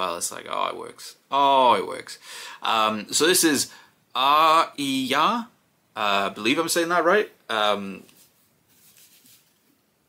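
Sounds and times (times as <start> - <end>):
headphones rustling: 8.0 - 9.8.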